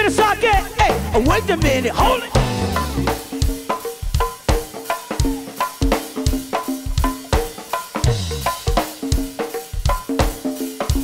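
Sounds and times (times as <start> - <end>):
conga tones: 0.0 - 11.0
drum kit beat: 0.0 - 11.0.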